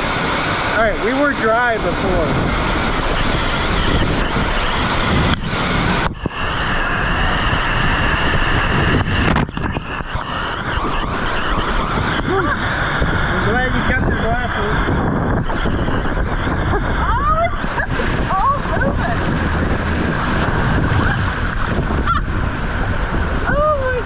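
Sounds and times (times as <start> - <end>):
water rushing and splashing: 0.0 - 24.0
wind buffeting microphone: 0.0 - 24.0.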